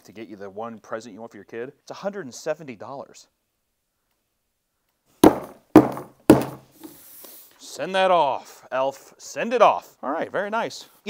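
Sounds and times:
coal banged on tabletop: 5.2 - 6.7.

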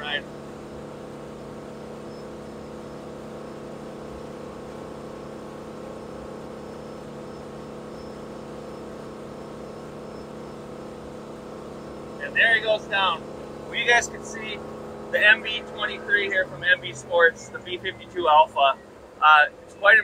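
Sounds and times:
boat engine droning: 0.0 - 20.0.

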